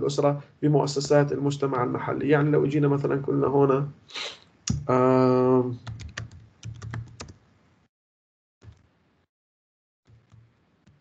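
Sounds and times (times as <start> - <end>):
typing on computer keyboard: 5.8 - 7.4.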